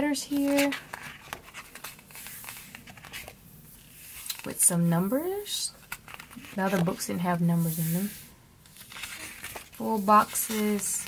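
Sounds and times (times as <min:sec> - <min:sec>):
paper pages rustling: 0:00.3 - 0:04.6, 0:05.2 - 0:11.0.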